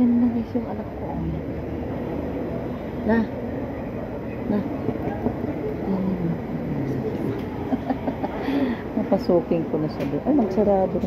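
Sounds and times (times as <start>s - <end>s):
voices murmuring: 0.0s - 11.0s.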